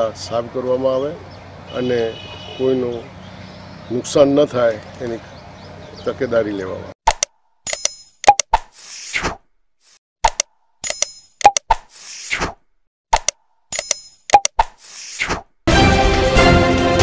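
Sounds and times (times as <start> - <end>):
mouse clicks: 10.2 - 11.8, 13.1 - 14.8.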